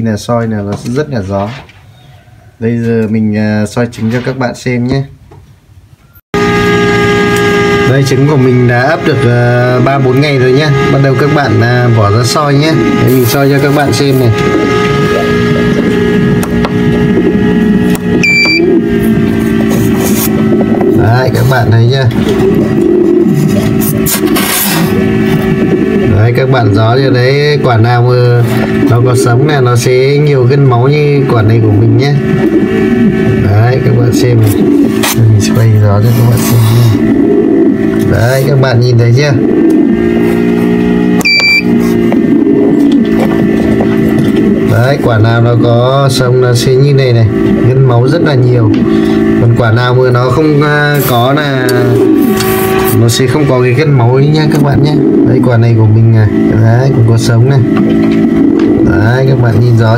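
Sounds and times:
incubator mechanical hum: 0.0s - 59.9s
short electronic beep: 18.2s - 18.8s, 41.2s - 41.8s.

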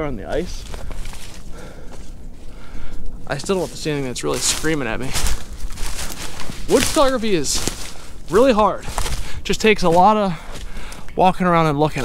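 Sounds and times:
footsteps in light snow: 0.2s - 12.0s.

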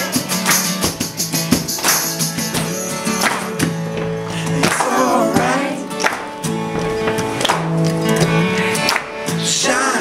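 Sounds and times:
strummed acoustic guitar chords: 0.0s - 10.0s
person singing: 4.3s - 6.0s, 8.2s - 10.0s.

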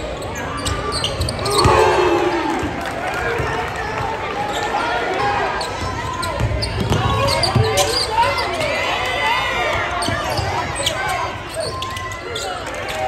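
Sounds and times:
crowd chattering and calling out: 0.0s - 13.0s
basketball bouncing on wooden floor: 6.4s - 7.8s.

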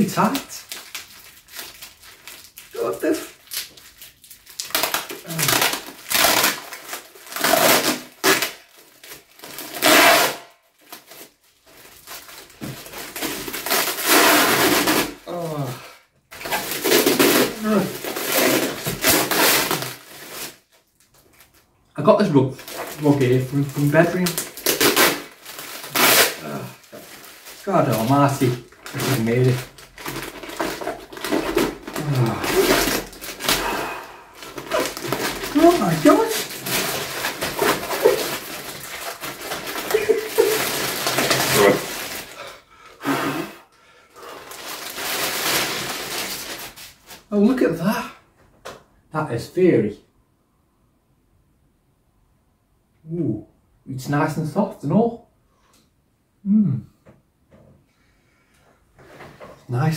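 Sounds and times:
crinkling plastic packaging: 0.0s - 15.4s, 16.3s - 42.6s, 44.2s - 47.3s
person grunting: 15.3s - 16.0s, 17.5s - 18.0s, 26.4s - 26.9s, 31.9s - 36.3s, 41.4s - 43.6s, 56.4s - 56.9s.

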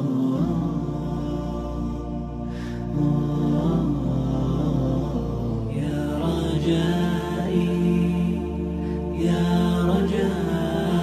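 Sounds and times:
low drone: 0.0s - 11.0s
voice chanting: 0.0s - 11.0s.

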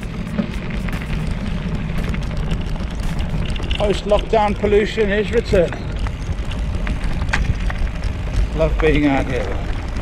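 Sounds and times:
bike tyres rolling over gravel: 0.0s - 10.0s
clicks and rattles: 0.0s - 10.0s.

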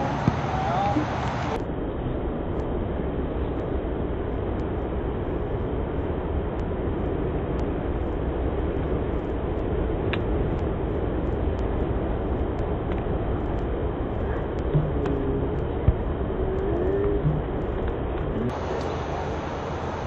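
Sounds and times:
low outdoor rushing noise: 0.0s - 20.0s.

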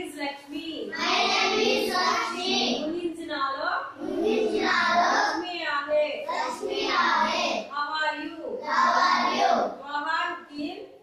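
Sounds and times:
children chanting in unison: 0.9s - 2.8s, 3.9s - 5.4s, 6.2s - 7.7s, 8.6s - 9.8s.

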